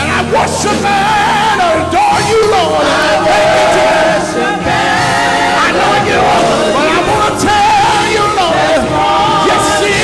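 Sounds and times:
men singing gospel: 0.0s - 10.0s.

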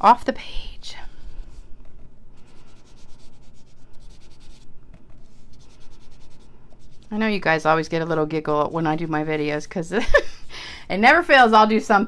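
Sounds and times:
sponge dauber rubbing on paper: 1.0s - 9.6s.

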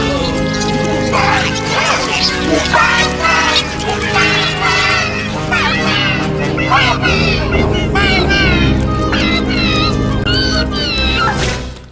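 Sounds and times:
high-pitched squealing cries: 0.0s - 11.4s
orchestral film score: 0.0s - 11.9s.

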